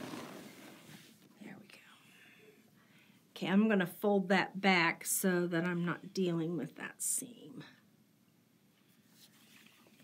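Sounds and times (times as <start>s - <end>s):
fabric rustling: 0.0s - 1.3s.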